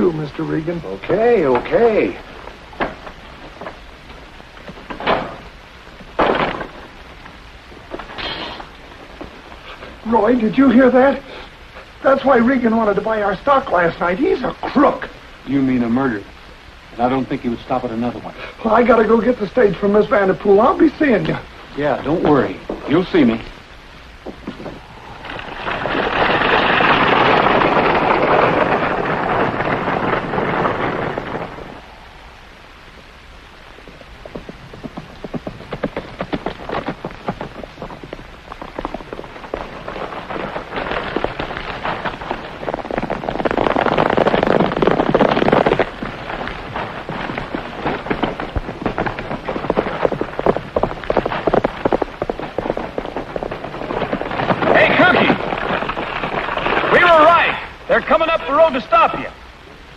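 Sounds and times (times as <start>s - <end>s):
stagecoach wheels rumbling: 0.0s - 16.3s, 17.0s - 59.9s
horse hoofbeats galloping: 33.6s - 59.2s.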